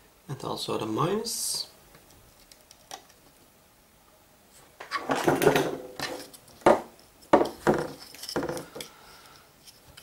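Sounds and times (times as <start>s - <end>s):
plastic housing knocks and clatters: 4.8s - 8.8s.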